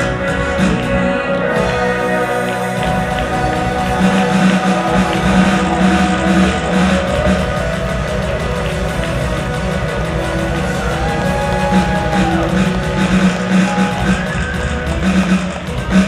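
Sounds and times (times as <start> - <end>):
live band music over pa: 0.0 - 16.0.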